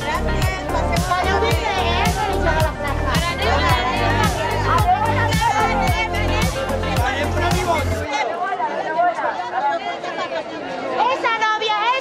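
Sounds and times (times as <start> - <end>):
women chattering: 0.0 - 12.0.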